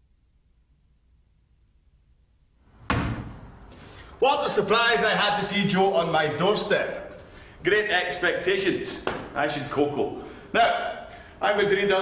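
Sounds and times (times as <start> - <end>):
sharp slam with room echo: 2.8 - 3.6.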